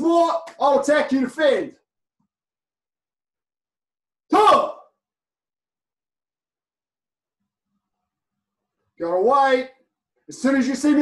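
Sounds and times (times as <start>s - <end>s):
man shouting: 4.3s - 5.0s.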